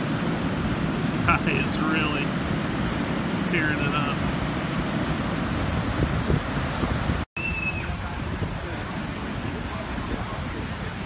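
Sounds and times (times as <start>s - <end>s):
ocean surf breaking: 0.0s - 11.0s
wind on microphone: 0.0s - 11.0s.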